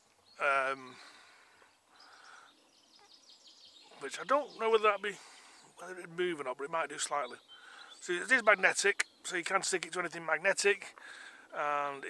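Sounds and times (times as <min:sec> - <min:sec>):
high bird chirps: 0:00.0 - 0:06.2, 0:06.8 - 0:09.5
faint outdoor background noise: 0:00.0 - 0:12.0.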